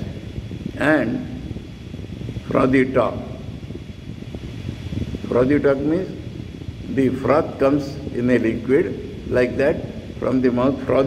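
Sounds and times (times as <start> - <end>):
steady low background noise: 0.0 - 11.0
man speaking: 6.9 - 11.0.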